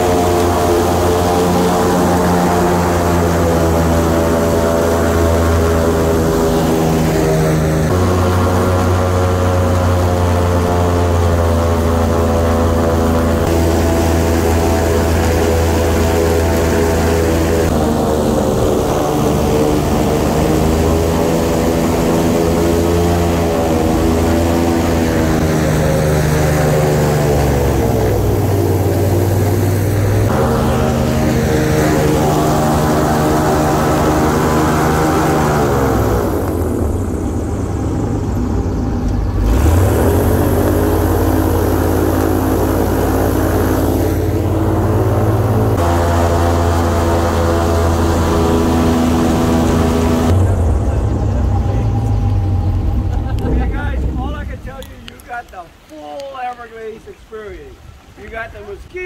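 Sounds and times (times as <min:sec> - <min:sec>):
airboat engine and propeller drone: 0:00.0 - 0:55.9.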